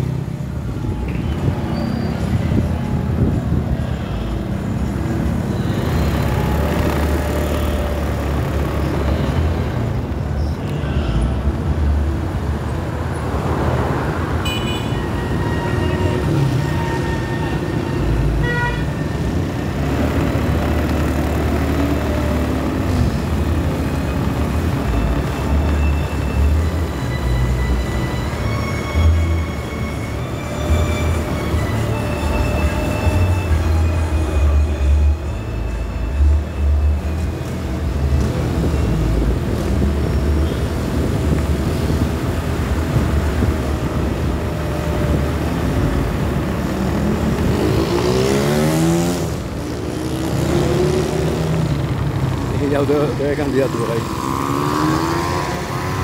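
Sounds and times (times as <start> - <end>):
vehicle engine rumble and road noise: 0.0 - 56.0.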